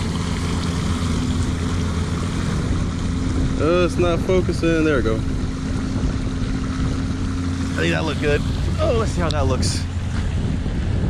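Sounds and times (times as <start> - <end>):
fountain water splashing: 0.0 - 10.5
low hum: 0.0 - 11.0.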